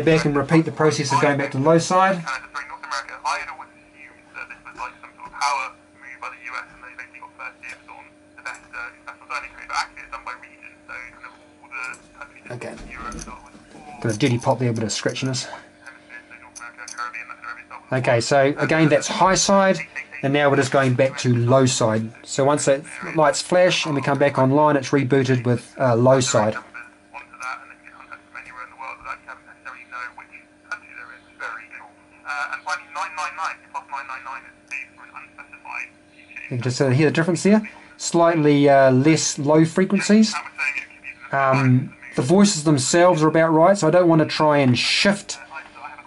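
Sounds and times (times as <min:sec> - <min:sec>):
narrow-band radio voice: 0:00.0 - 0:46.0.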